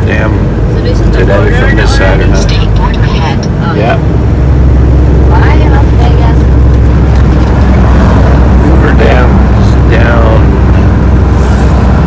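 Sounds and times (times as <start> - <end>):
diesel truck engine drone: 0.0 - 12.0
tyres on highway: 0.0 - 12.0.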